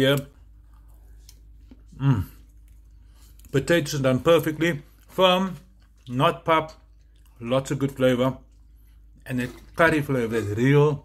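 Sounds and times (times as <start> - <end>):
low room hum: 0.0 - 11.0
man chewing food: 0.0 - 11.0.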